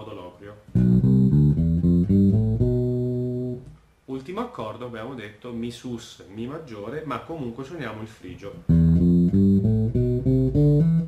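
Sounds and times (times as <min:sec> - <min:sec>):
electric bass playing scale: 0:00.7 - 0:03.8, 0:08.6 - 0:11.0.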